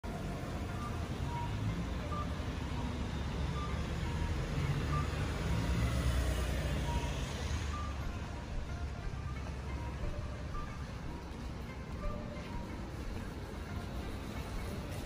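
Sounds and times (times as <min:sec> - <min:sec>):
low rumble of road traffic: 0:00.0 - 0:15.0.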